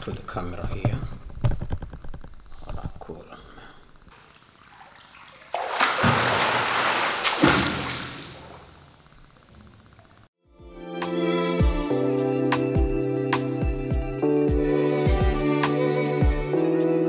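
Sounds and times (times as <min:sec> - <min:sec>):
water lapping: 0:04.1 - 0:08.7
pool water splashing: 0:04.1 - 0:09.0
heavy slaps on water: 0:05.6 - 0:08.6.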